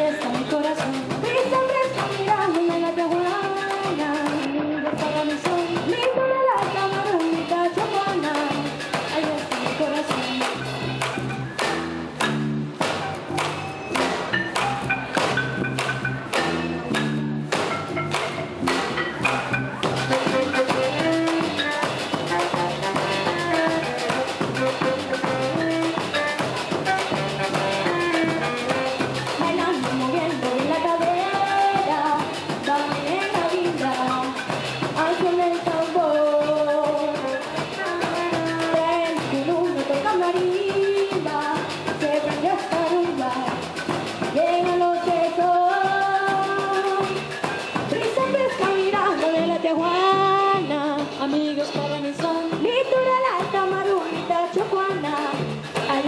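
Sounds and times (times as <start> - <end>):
girl singing into a microphone: 0.0 - 10.5, 29.4 - 34.4, 35.0 - 43.6, 44.3 - 47.2, 47.9 - 56.0
bass: 0.0 - 56.0
drum beat: 0.2 - 56.0.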